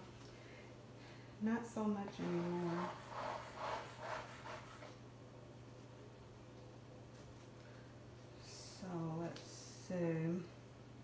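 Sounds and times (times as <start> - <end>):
comb rubbing on canvas: 2.2 - 5.0.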